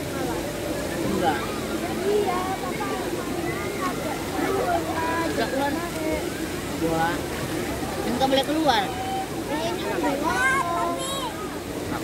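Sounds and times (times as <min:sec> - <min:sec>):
people talking: 0:00.0 - 0:07.2.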